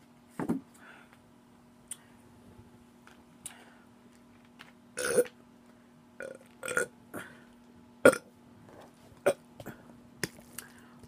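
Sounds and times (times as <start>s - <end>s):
woman burping loudly: 5.0s - 5.3s, 6.2s - 6.9s, 8.0s - 8.3s.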